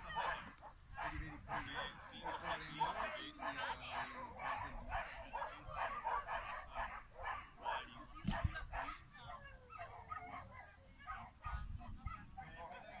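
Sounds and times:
dog barking: 0.0s - 13.0s.

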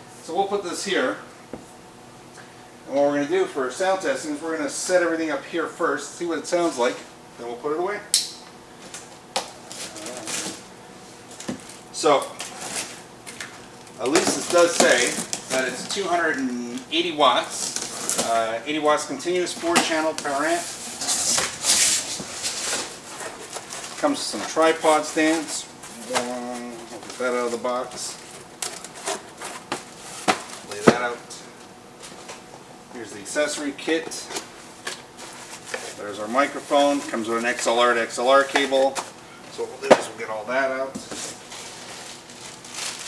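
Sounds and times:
cardboard scraping and rustling: 14.1s - 16.2s, 19.6s - 31.1s, 35.2s - 37.6s, 41.0s - 43.0s.

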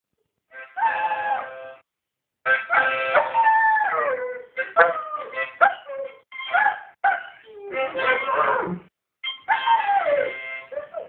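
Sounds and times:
dog howling: 3.2s - 11.0s.

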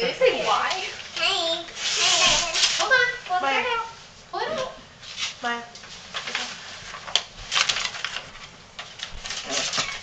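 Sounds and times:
paper rustling and crinkling: 1.8s - 3.2s, 5.1s - 10.0s.

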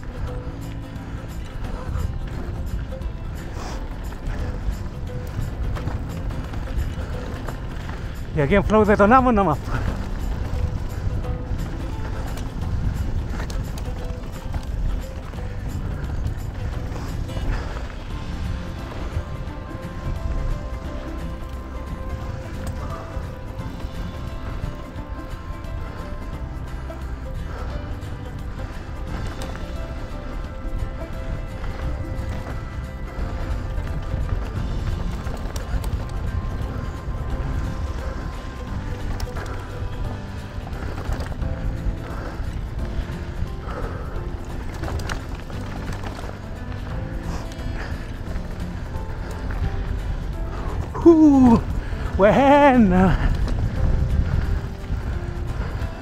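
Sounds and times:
bike tyres rumbling on dirt: 0.0s - 56.0s
faint background music: 0.0s - 56.0s
wind buffeting camera: 0.0s - 56.0s.

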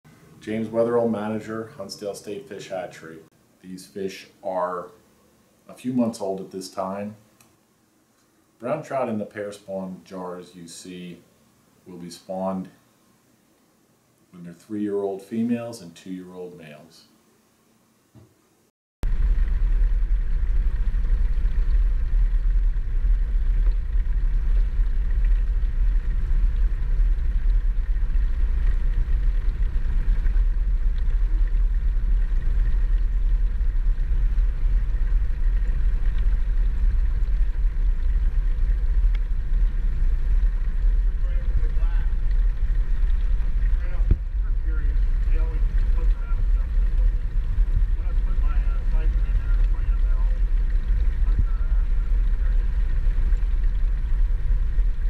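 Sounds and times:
water flowing in a fish tank: 19.0s - 55.0s.

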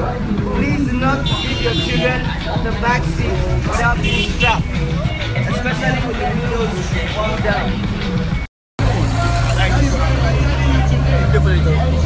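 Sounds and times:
street crowd voices: 0.0s - 12.0s
vehicle engine hum: 0.0s - 12.0s.

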